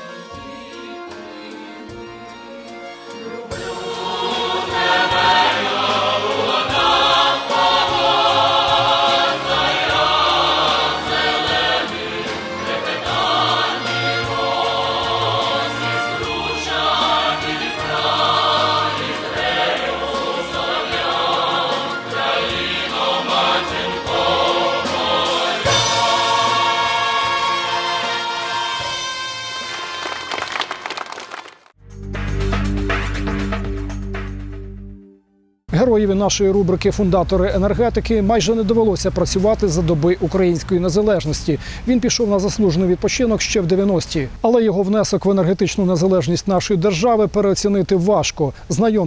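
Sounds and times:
instrumental backing with bass: 0.0 - 30.0, 31.8 - 40.0
women's choir singing: 3.1 - 30.3.

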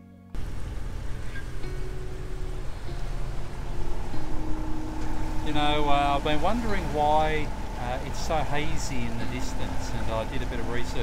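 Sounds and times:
water or wind noise: 0.4 - 8.4
faint steady tones: 0.4 - 11.0
low engine rumble: 0.4 - 11.0.

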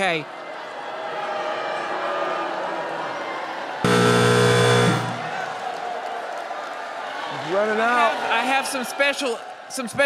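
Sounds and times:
loud harsh buzzer: 3.8 - 5.6.

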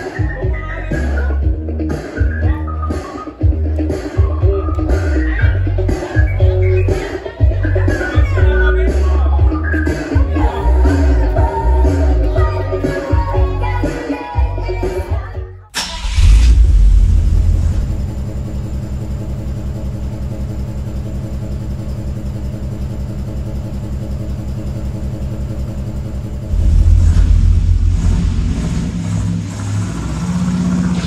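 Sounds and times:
car engine revving and idling: 15.8 - 31.0.

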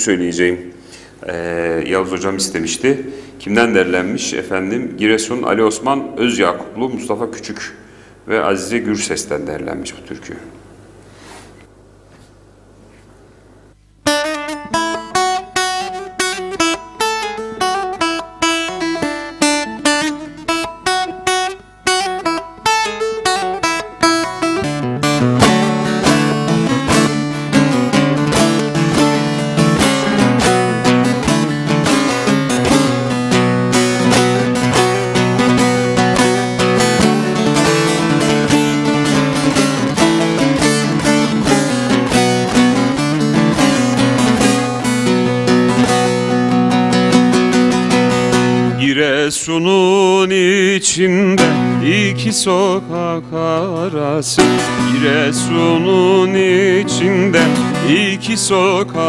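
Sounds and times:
long-necked lute plucking: 14.1 - 49.2, 50.4 - 59.0.

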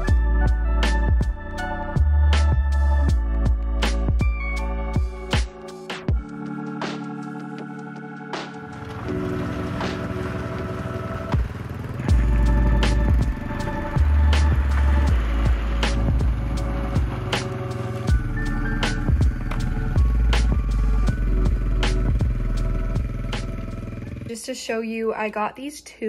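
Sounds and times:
deep bass line: 0.0 - 7.2, 8.4 - 24.1
background music with steady beat: 0.0 - 24.2.

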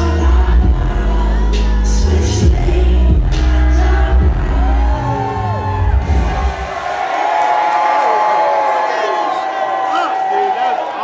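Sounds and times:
crowd cheering and whooping: 3.4 - 11.0.

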